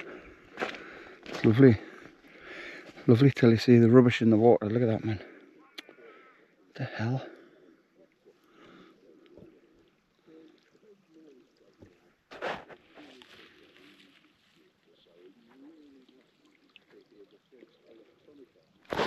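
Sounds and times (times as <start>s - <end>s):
faint indistinct voice: 5.0s - 19.0s.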